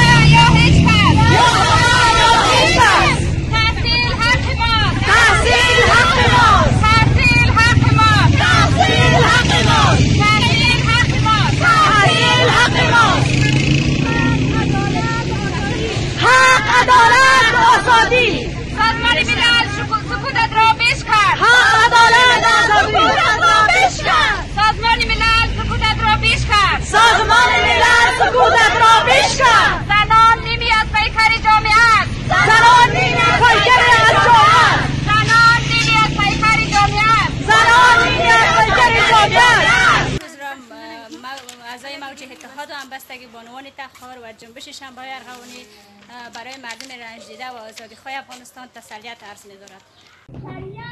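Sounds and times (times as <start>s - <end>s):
women chanting slogans: 0.0s - 43.7s.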